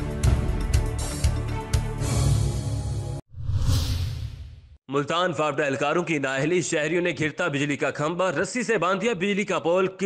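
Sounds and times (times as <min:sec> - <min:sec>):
whoosh with deep rumble: 0:03.3 - 0:04.7.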